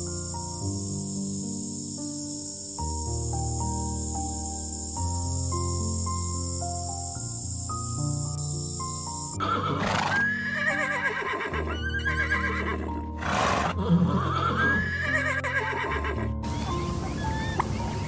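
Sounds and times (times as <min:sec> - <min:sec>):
background music: 0:00.0 - 0:18.0
horse whinnying: 0:09.4 - 0:16.2.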